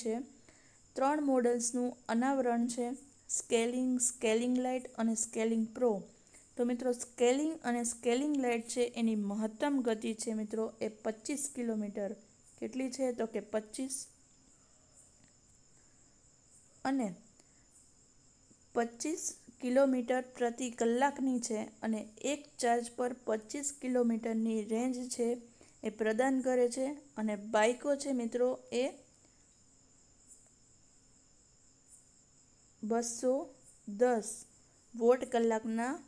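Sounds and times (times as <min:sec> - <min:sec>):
faint high-pitched whine: 0:00.0 - 0:36.0.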